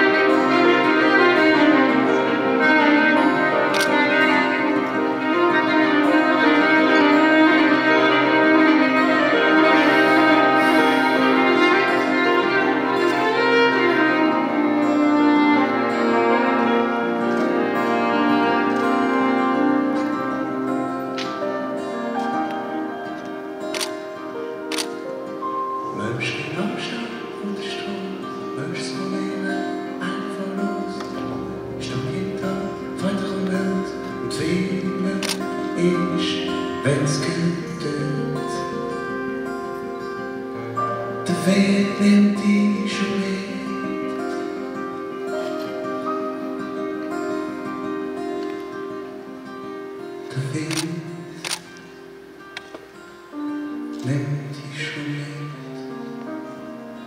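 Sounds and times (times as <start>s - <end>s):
acoustic guitar: 0.0s - 57.0s
piano: 0.0s - 57.0s
violin: 0.0s - 57.0s
sharp clicks: 23.7s - 24.1s, 50.6s - 51.8s.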